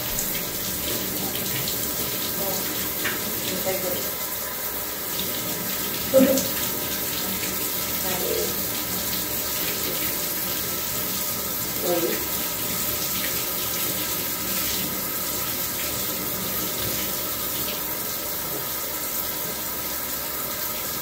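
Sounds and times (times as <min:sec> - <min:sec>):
water running into a tub: 0:00.0 - 0:21.0.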